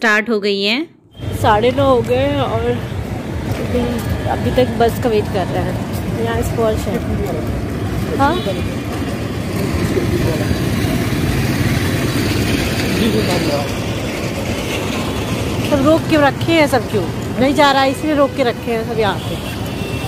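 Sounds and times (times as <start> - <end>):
voices: 0.0 - 14.0, 15.0 - 19.7
vehicle engine running: 1.2 - 19.3.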